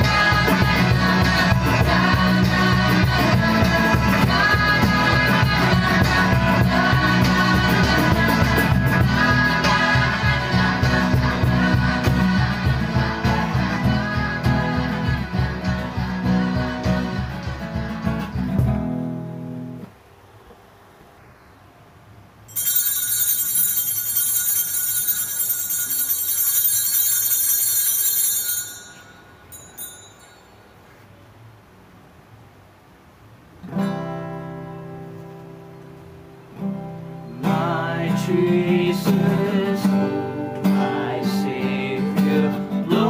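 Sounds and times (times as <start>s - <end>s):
bright ringing music: 22.5s - 30.8s.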